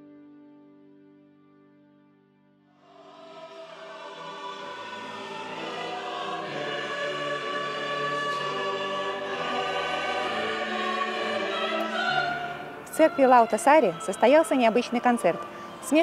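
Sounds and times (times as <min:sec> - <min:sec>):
mixed choir singing: 0:02.8 - 0:16.0.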